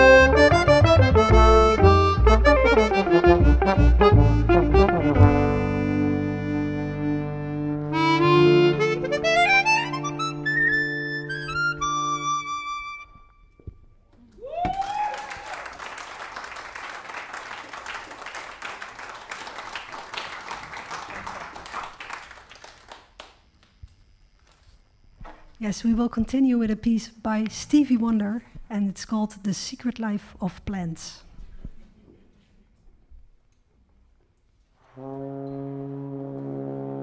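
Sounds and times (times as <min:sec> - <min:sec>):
jazz band with harmonica: 0:00.0 - 0:13.3
rising whoop: 0:14.3 - 0:15.8
audience applause: 0:14.3 - 0:23.7.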